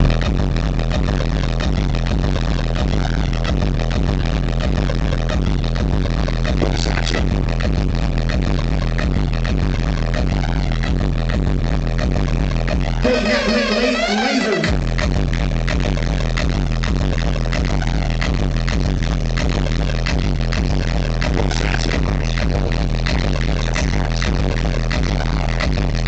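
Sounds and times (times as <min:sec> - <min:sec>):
electronic dance music: 0:00.0 - 0:26.0
heavy bass: 0:00.0 - 0:26.0.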